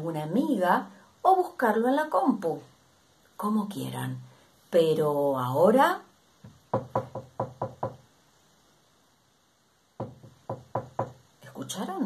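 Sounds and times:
knocking on door: 0:06.4 - 0:08.0, 0:10.0 - 0:11.2.

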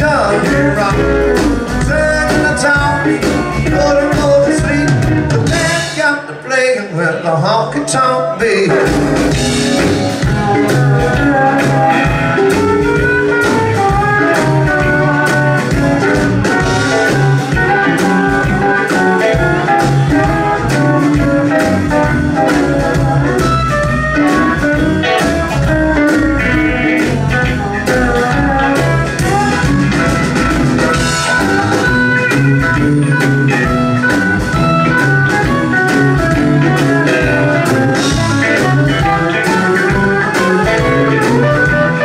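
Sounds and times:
drum kit beat: 0:00.0 - 0:06.3, 0:08.6 - 0:42.0
electric guitars: 0:00.0 - 0:42.0
keyboard: 0:00.0 - 0:42.0.

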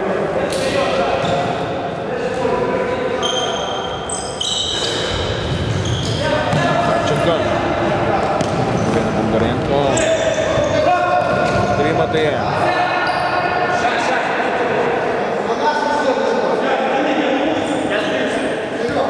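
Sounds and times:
shoes squeaking on floor: 0:03.2 - 0:07.4, 0:08.4 - 0:12.0.

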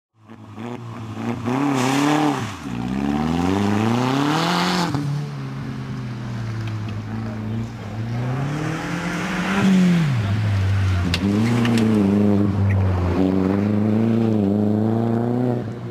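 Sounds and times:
car engine revving: 0:00.2 - 0:15.9.

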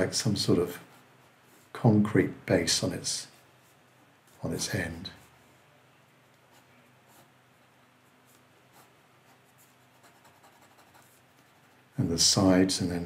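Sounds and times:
pencil scratching on paper: 0:06.5 - 0:07.4, 0:08.2 - 0:11.9.

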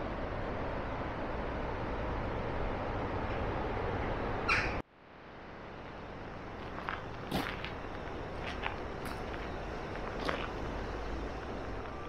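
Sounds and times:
steady rushing outdoor noise: 0:00.0 - 0:12.0.

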